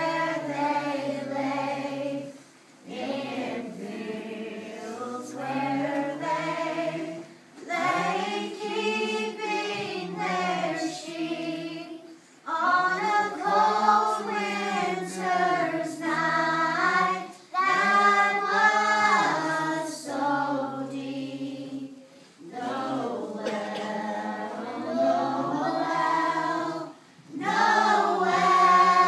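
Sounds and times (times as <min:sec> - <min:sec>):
children singing: 0:00.0 - 0:29.0.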